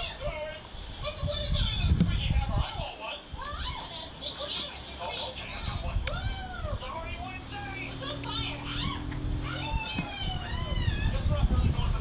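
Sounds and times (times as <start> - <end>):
cat meowing: 8.7 - 11.2.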